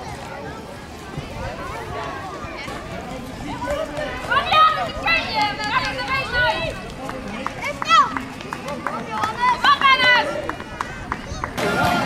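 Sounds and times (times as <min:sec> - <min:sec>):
children shouting outdoors: 0:08.9 - 0:12.0.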